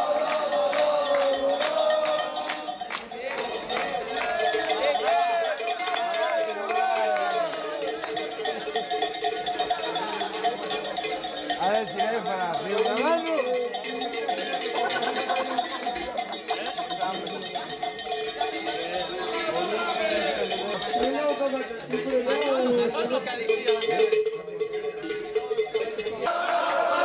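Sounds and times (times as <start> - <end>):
cowbells clanking: 0.0 - 26.4
crowd voices and shouts: 0.0 - 27.0.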